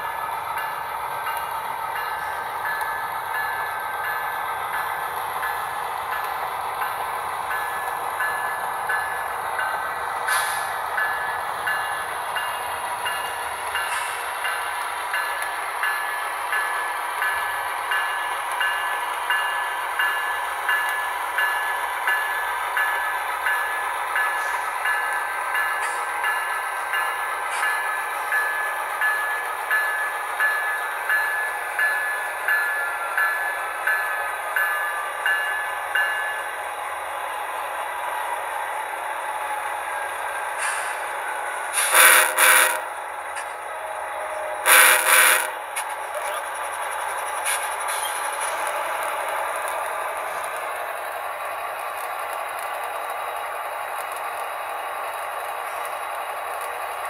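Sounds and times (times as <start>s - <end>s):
locomotive bell ringing: 0.0s - 37.2s, 39.8s - 51.0s
model train rolling and motor noise: 0.0s - 57.0s
sharp clicks from track: 10.3s - 10.7s, 45.0s - 49.8s, 54.0s - 54.5s.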